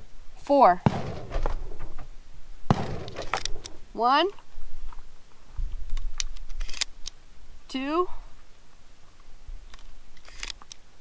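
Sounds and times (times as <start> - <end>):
shells pushed into shotgun: 2.7 - 3.8, 6.0 - 7.2, 9.7 - 10.8
shotgun metallic click: 2.7 - 3.8.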